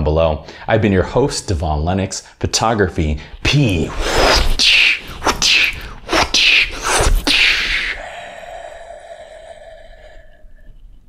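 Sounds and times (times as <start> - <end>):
man beatboxing: 3.5 - 8.1.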